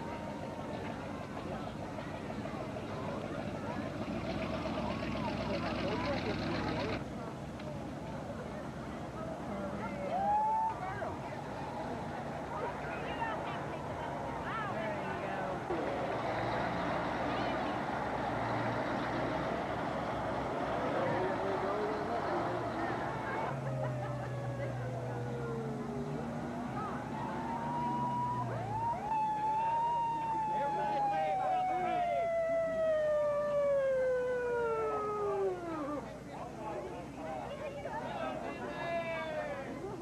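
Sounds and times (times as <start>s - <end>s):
crowd talking: 0.0s - 40.0s
truck engines passing: 0.0s - 40.0s
emergency siren winding down: 20.9s - 36.1s.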